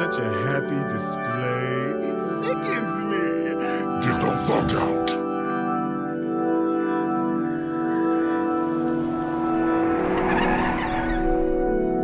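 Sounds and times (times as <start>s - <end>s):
organ and synthesizer music: 0.0s - 12.0s
tyres screeching: 9.6s - 11.7s.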